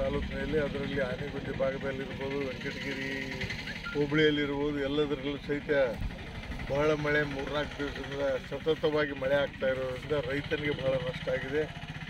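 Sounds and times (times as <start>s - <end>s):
man speaking: 0.0s - 6.0s, 6.7s - 11.7s.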